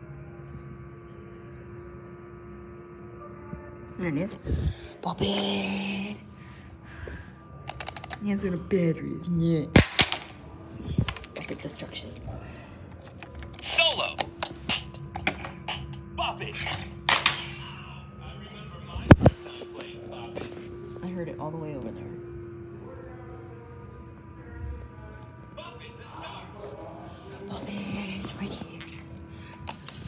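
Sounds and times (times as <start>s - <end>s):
plastic toy clicks and knocks: 7.7s - 8.2s.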